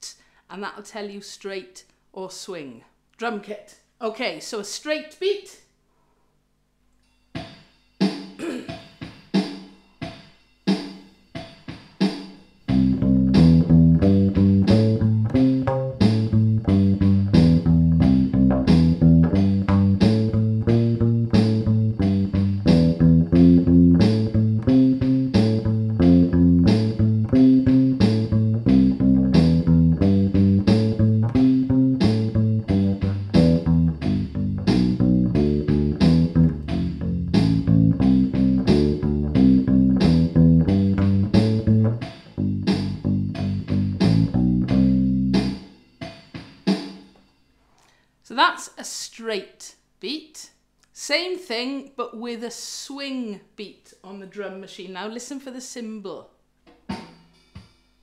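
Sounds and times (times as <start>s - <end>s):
drum machine rock beat: 7.2s - 47.4s, 56.7s - 58.0s
bass ukulele bass line: 12.7s - 45.6s.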